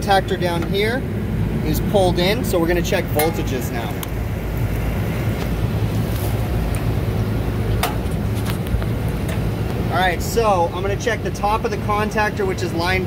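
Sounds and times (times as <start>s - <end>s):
condenser fan humming: 0.0s - 13.0s.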